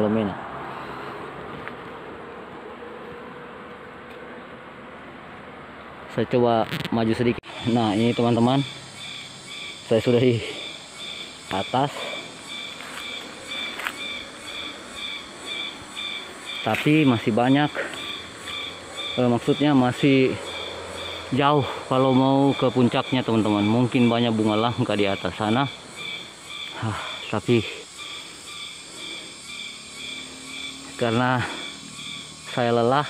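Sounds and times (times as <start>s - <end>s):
insects trilling: 2.1s - 33.0s.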